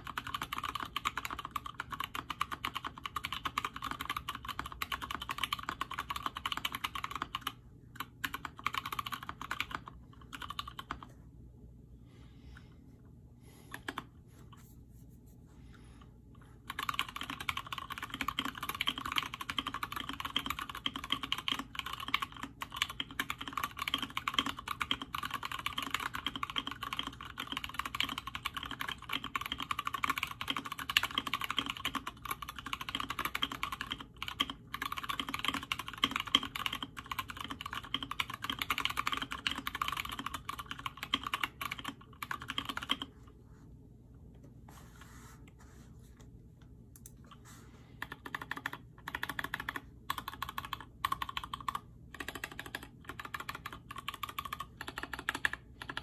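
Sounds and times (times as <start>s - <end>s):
fast mechanical keyboard typing: 0.0s - 11.1s, 16.6s - 43.1s, 48.0s - 56.0s.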